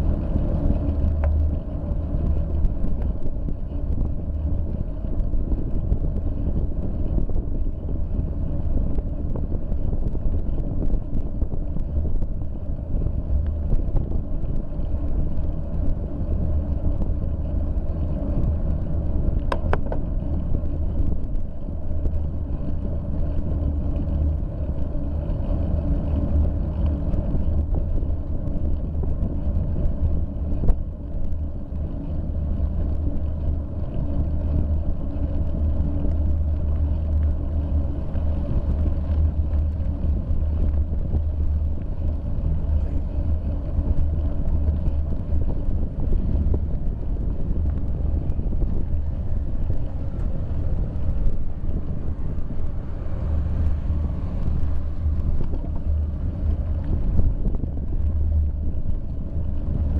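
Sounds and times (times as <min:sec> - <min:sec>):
road and tyre noise: 0:00.0 - 0:59.9
wind rumble on microphone: 0:00.0 - 0:59.9.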